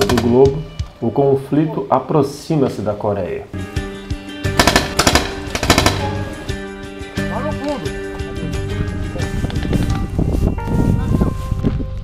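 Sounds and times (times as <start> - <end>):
background music: 0.0 - 12.0
paintball marker firing: 4.6 - 6.3.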